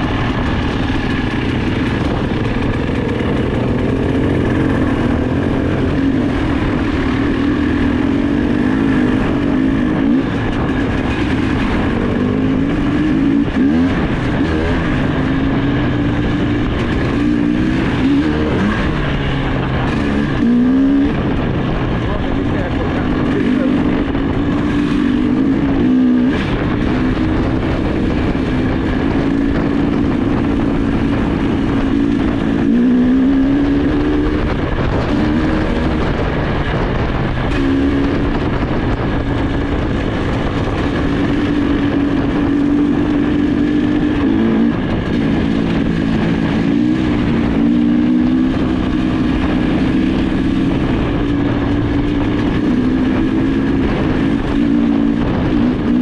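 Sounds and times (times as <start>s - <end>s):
low rumble: 0.0s - 56.0s
motorcycle engine revving: 0.0s - 56.0s.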